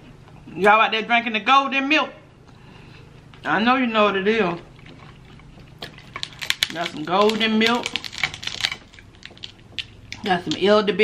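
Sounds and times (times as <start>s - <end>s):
crab shells cracking by hand: 5.5s - 10.6s.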